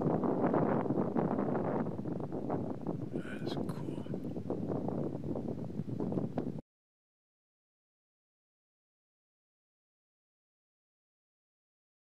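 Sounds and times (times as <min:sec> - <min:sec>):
wind blowing on microphone: 0:00.0 - 0:06.6.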